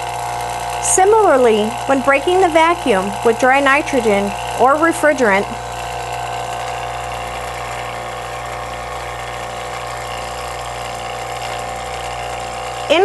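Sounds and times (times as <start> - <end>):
machine motor humming: 0.0 - 13.0.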